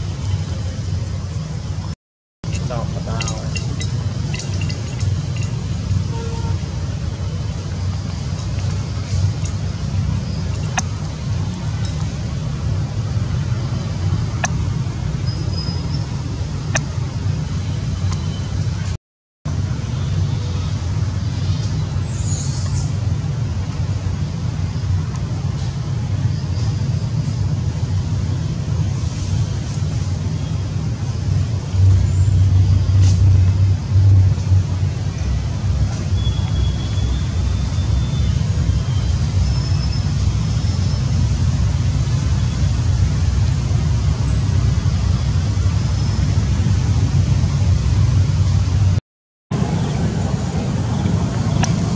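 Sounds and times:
steady low rumble: 0.0 - 22.0, 22.9 - 51.9.

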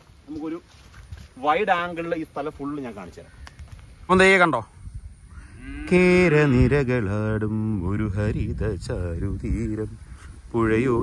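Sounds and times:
cow mooing: 5.4 - 6.7.

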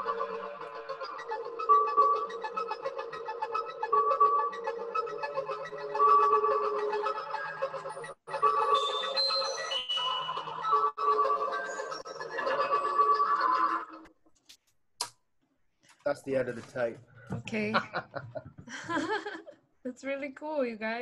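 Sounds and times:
pulsing synthesizer bleeps: 0.0 - 14.0.

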